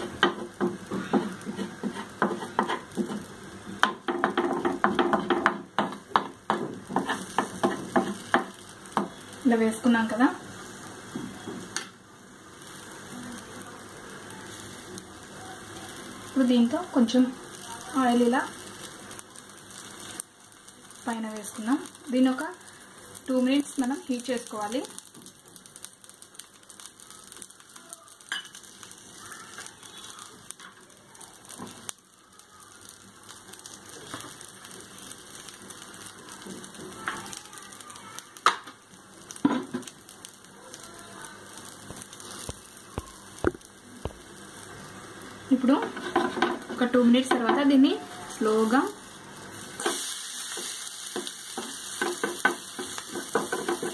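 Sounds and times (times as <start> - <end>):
omelette sizzling on griddle: 0.0 - 53.9.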